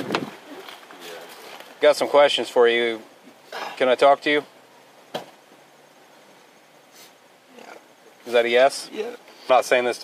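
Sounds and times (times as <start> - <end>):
quiet steady hiss: 0.0 - 10.0.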